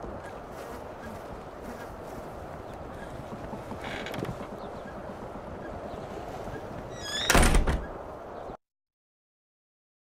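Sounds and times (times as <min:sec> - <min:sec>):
door squeak: 0:06.9 - 0:08.0
wooden door slamming shut: 0:07.1 - 0:07.9.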